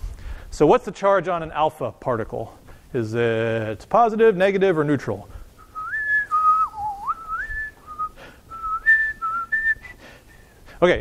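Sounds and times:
man whistling a tune: 5.6s - 10.6s.

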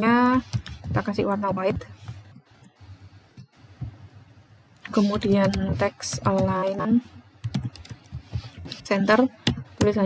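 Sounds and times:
computer keyboard typing: 0.0s - 2.8s, 4.8s - 10.0s.

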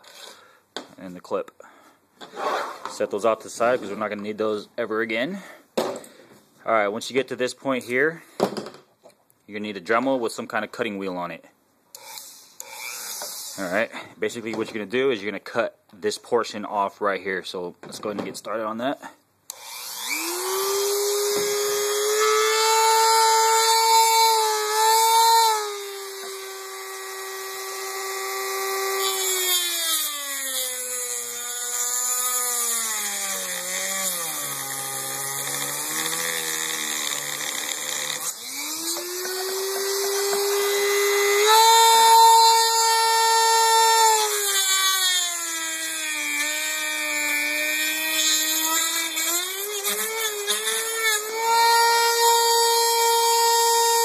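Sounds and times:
rotary tool cutting wheel whining: 12.0s - 13.7s, 19.5s - 54.0s.

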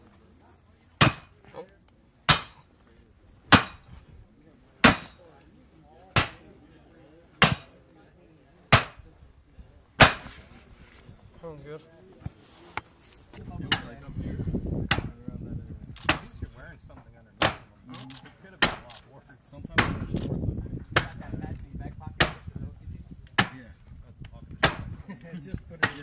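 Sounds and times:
sledgehammer clanging on steel stake: 0.0s - 0.4s, 1.0s - 1.5s, 2.3s - 2.7s, 3.5s - 4.0s, 4.8s - 5.2s, 6.2s - 6.7s, 7.4s - 8.0s, 8.7s - 10.5s, 13.7s - 14.2s, 14.9s - 15.2s, 16.0s - 16.6s, 17.4s - 19.1s, 19.8s - 20.4s, 21.0s - 21.5s, 22.2s - 22.8s, 23.4s - 25.1s, 25.8s - 26.0s.

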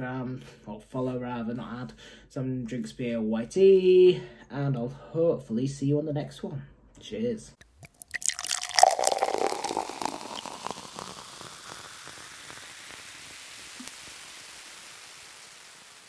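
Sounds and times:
beer head fizzing and crackling: 7.6s - 16.0s
beer pouring into a glass: 7.6s - 16.0s.

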